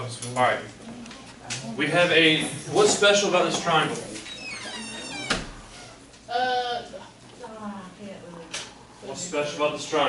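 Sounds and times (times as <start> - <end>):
cabinet door hinge squeak: 4.3 - 6.0.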